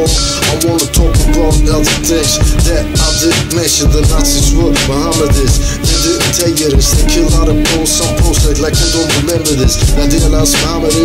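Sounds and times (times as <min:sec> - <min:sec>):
drum beat: 0:00.0 - 0:11.0
rapping over a beat: 0:00.0 - 0:11.0.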